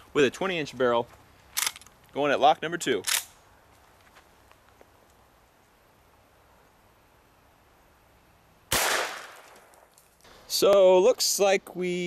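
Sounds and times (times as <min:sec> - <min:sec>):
rifle shot: 0:08.7 - 0:09.8.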